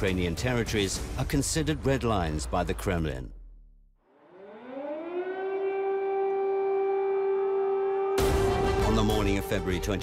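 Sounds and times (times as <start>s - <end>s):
air-raid siren wailing: 4.1s - 10.0s.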